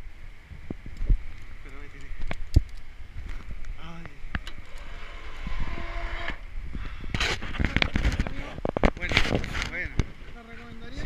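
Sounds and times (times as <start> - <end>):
low rumbling: 0.0 - 10.9.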